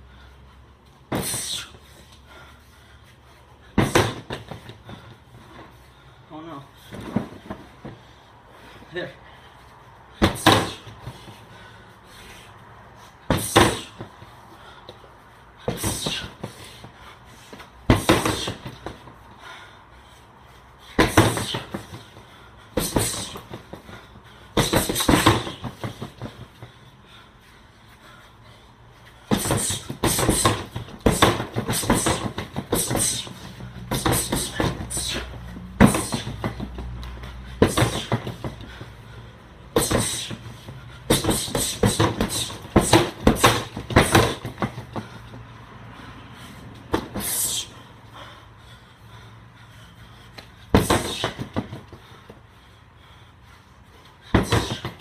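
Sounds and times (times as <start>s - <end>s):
strikes on heavy bag: 3.8s - 4.5s, 17.9s - 19.0s, 21.0s - 21.9s, 24.6s - 26.3s, 29.3s - 33.3s, 35.8s - 36.7s, 41.1s - 44.8s, 50.7s - 51.8s, 54.3s - 55.0s.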